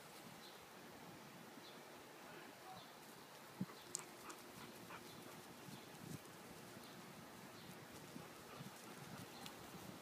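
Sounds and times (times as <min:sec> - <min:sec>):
faint ticks: 0:03.3 - 0:04.4, 0:09.4 - 0:09.6.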